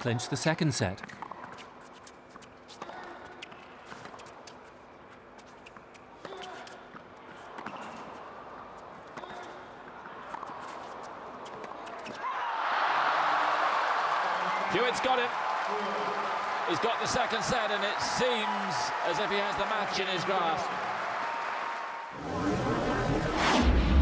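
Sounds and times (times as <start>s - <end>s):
crowd cheering and applause: 12.2s - 23.3s.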